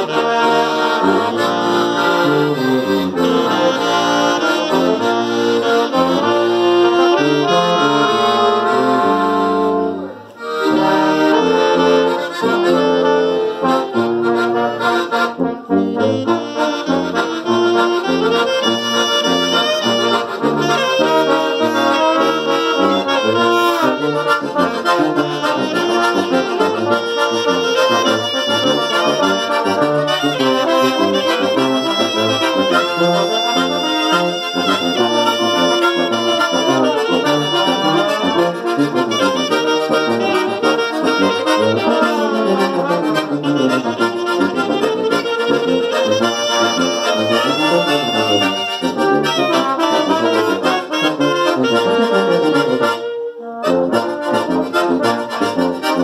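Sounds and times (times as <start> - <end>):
accordion: 0.0 - 56.0
saxophone: 0.0 - 56.0
trombones: 0.0 - 56.0
tuba bass line: 0.0 - 56.0.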